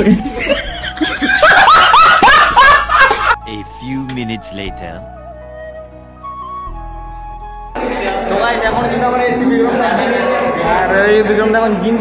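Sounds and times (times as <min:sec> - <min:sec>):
man laughing loudly: 0:00.0 - 0:03.4.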